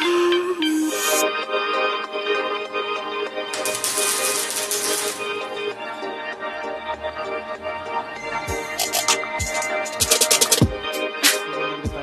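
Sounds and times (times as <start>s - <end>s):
background music: 0.0s - 12.0s
welding arc crackling and sizzling: 3.5s - 5.6s.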